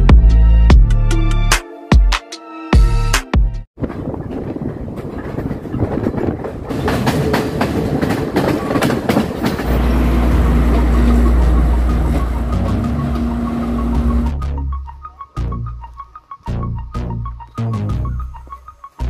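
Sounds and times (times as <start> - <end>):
train wheels clattering on rails: 3.8 - 14.3
diesel engine rumbling: 7.9 - 14.5.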